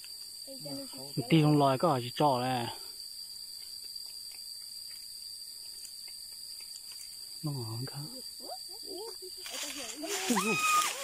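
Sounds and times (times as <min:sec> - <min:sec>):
chorus of insects droning: 0:00.0 - 0:11.0.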